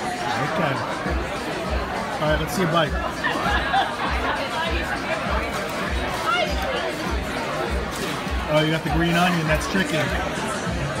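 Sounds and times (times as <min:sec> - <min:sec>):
background music with deep bass beat: 0:00.0 - 0:11.0
diners chattering: 0:00.0 - 0:11.0.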